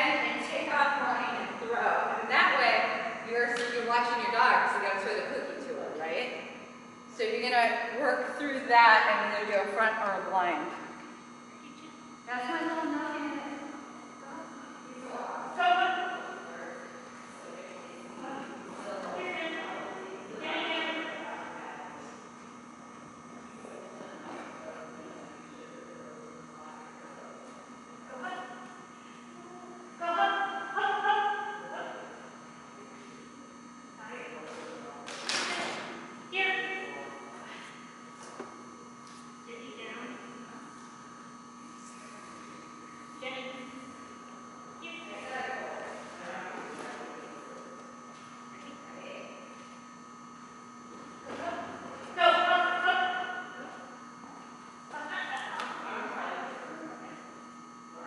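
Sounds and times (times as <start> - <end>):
steady electrical hum: 0.0 - 58.0.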